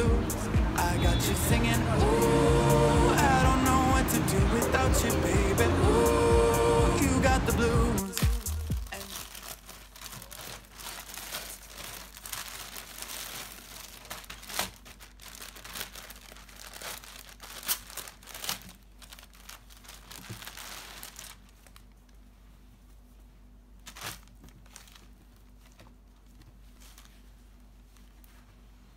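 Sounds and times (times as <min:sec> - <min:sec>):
song playing: 0:00.0 - 0:09.0
plastic bag crinkling: 0:08.0 - 0:22.3, 0:23.8 - 0:28.4.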